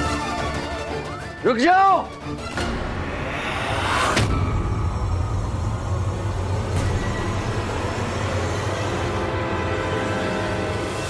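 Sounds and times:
low rumbling drone: 0:02.7 - 0:11.0.

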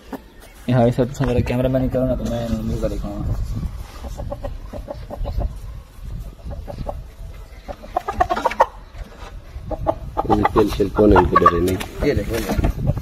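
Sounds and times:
rooster clucking: 0:03.9 - 0:05.7, 0:06.4 - 0:13.0.

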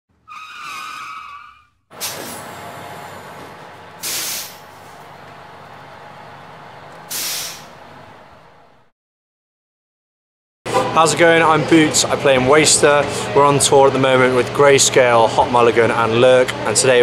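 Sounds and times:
loud hisses: 0:04.0 - 0:04.7, 0:07.1 - 0:07.8.

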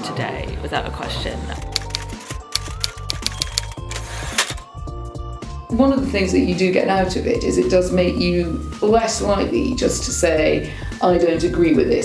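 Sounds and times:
background music with low bass: 0:00.0 - 0:12.0.

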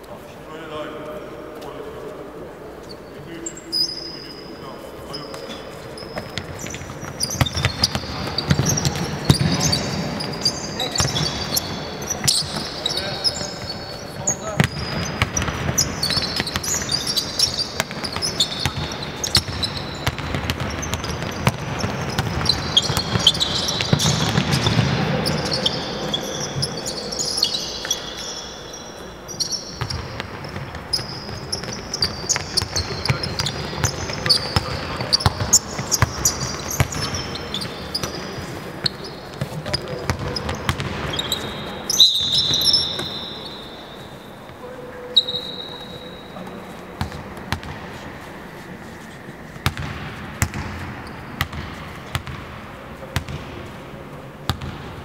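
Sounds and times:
sneaker squeaks: 0:02.7 - 0:52.4
basketballs bouncing on wooden floor: 0:06.1 - 0:26.7, 0:29.8 - 0:38.4, 0:39.3 - 0:41.5, 0:47.0 - 0:47.8, 0:49.6 - 0:52.6, 0:53.2 - 0:53.6, 0:54.5 - 0:54.9.

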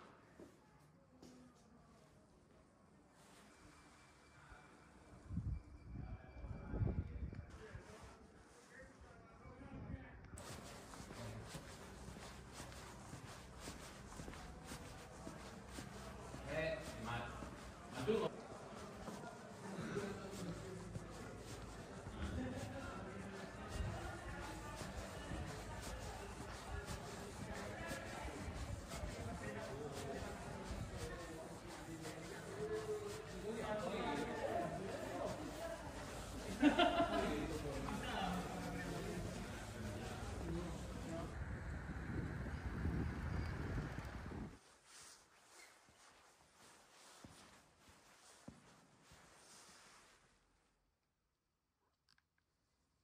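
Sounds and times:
faint indistinct voices: 0:00.0 - 0:50.2
faint music: 0:00.0 - 0:50.2.

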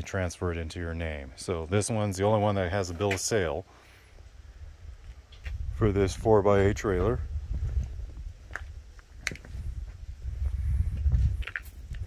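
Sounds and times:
low rumble of microphone handling: 0:04.2 - 0:12.0.

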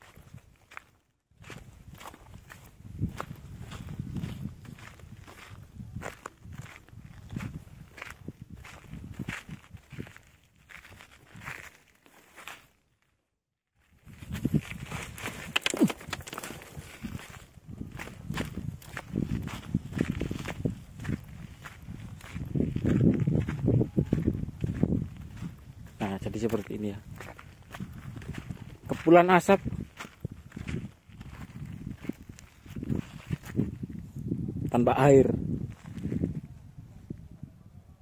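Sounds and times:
footsteps on sand and gravel: 0:00.0 - 0:13.1, 0:13.8 - 0:34.0, 0:34.7 - 0:36.4.

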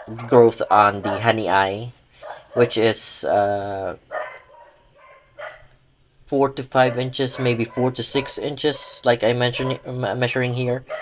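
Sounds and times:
faint dog barking: 0:02.2 - 0:03.0, 0:04.1 - 0:05.8, 0:06.8 - 0:09.9, 0:10.8 - 0:11.0.

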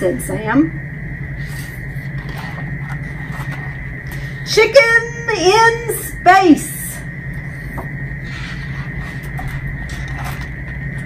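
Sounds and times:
room hum with high whine: 0:00.0 - 0:11.0
page turning rustles and clicks: 0:07.7 - 0:11.0.

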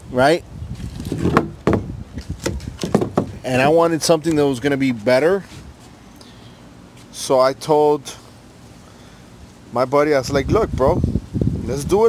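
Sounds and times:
fiberglass mold knocking and scraping: 0:01.0 - 0:03.6.

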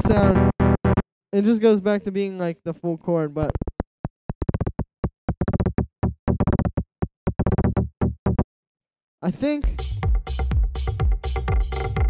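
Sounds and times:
synth plucks: 0:00.0 - 0:01.0.

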